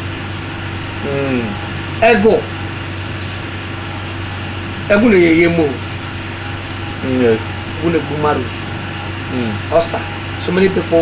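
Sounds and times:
low mechanical hum: 0.0 - 11.0
man talking: 1.0 - 2.5, 4.9 - 5.8, 7.0 - 8.5, 9.3 - 11.0.

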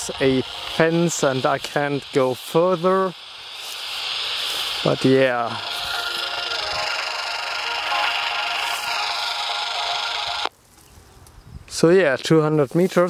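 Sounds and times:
faint radio signal: 0.0 - 10.5
radio static hiss: 0.0 - 10.5.

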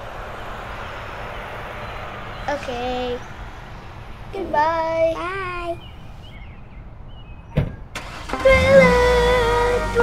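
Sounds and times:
car engine rumbling: 0.0 - 10.0
thump: 7.5 - 7.8
music with held tune: 8.1 - 10.0.

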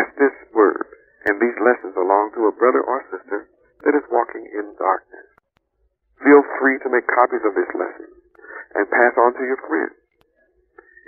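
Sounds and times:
person talking: 0.0 - 5.2, 6.2 - 9.9.

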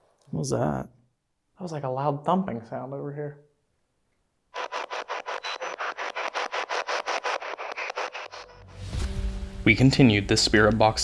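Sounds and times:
chopped radio static: 4.6 - 8.6.

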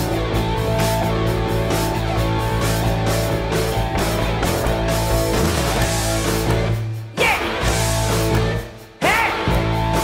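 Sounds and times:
rock band with electric guitar: 0.0 - 10.0.

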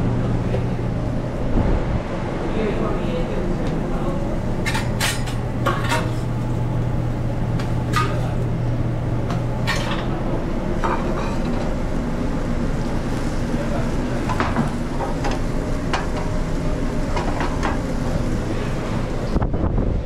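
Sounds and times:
low hum: 0.0 - 20.0
food sizzling: 10.6 - 19.3.

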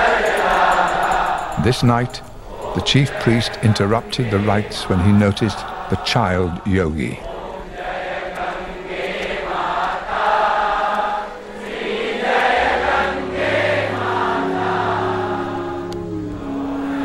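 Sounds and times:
choir singing chant-like phrases: 0.0 - 17.0
low steady drone: 0.0 - 17.0.

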